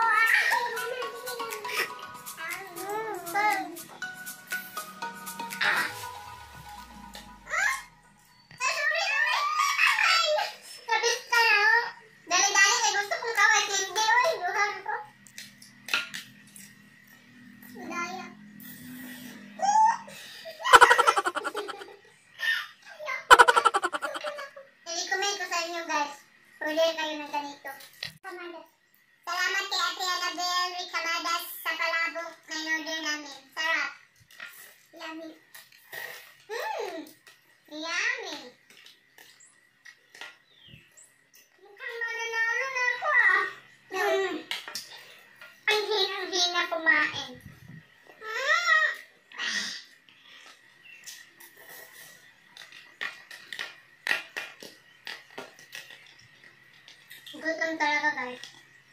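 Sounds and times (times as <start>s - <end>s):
burst of pulsing laughter: 20.6s - 22.0s, 23.3s - 24.5s
women laughing and giggling: 20.7s - 22.0s, 23.3s - 24.5s.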